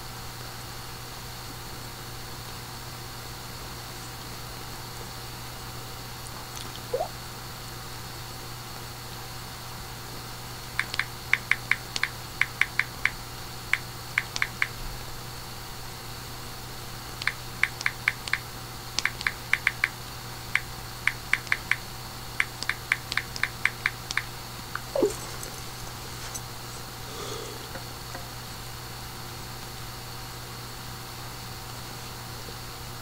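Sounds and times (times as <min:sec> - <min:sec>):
low electrical hum: 0:00.0 - 0:33.0.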